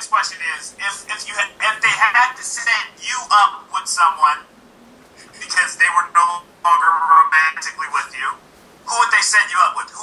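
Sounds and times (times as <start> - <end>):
person talking over video call: 0.0 - 4.5, 5.2 - 10.0.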